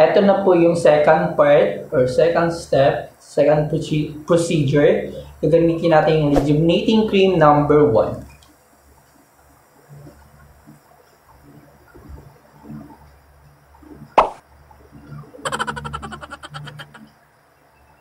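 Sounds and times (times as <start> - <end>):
fast series of clicks: 15.5 - 17.1.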